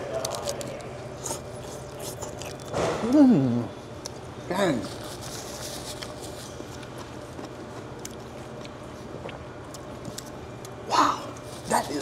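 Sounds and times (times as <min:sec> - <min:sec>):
person chewing with faint crunches: 0:00.0 - 0:12.0.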